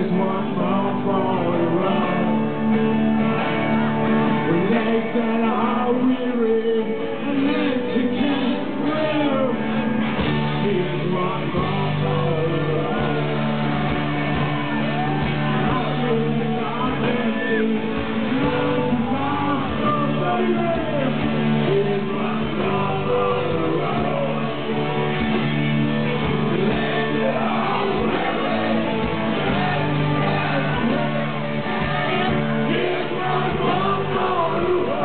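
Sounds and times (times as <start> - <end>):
electric guitar: 0.0 - 35.0
rock band playing: 0.0 - 35.0.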